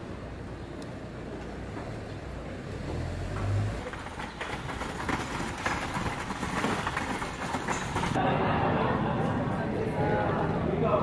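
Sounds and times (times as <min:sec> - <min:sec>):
vehicle low rumble: 0:00.0 - 0:08.2
dense traffic noise: 0:00.0 - 0:11.0.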